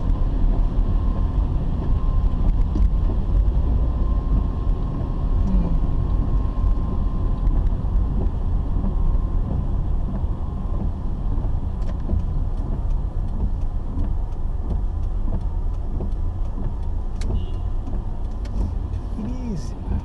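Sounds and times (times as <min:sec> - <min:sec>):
car engine and tyres rumbling: 0:00.0 - 0:20.0.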